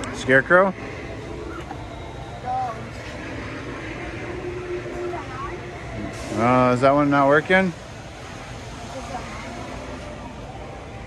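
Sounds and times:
store interior hum: 0.0 - 11.0.

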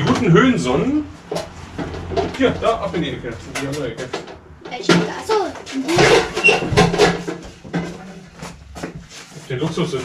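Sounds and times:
objects knocking and clattering: 1.2 - 9.8.

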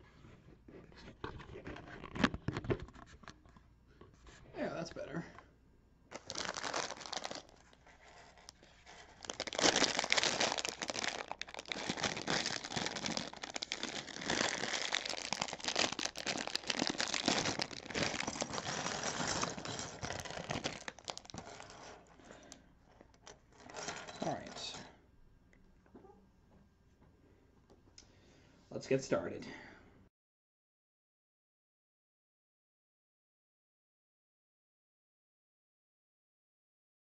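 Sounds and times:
plastic bag crinkling: 6.1 - 24.6.

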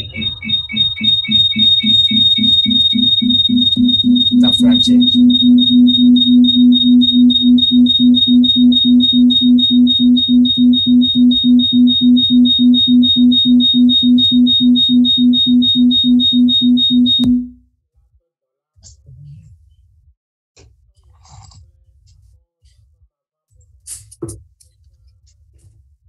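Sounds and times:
pulsing electronic tone: 0.0 - 17.6.

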